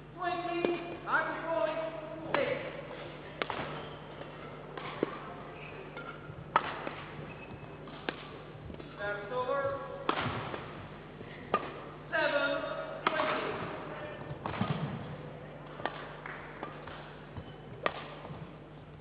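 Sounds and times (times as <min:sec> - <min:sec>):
rackets striking shuttlecock: 0:02.2 - 0:09.0, 0:10.0 - 0:10.8, 0:11.5 - 0:12.0, 0:13.0 - 0:18.6
shoes squeaking on court: 0:03.0 - 0:09.8, 0:16.8 - 0:18.7.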